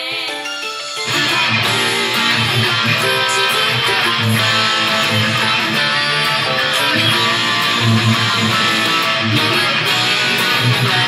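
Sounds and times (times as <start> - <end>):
electric guitar strumming rock: 0.5 - 11.0
rock band backing track: 1.0 - 11.0.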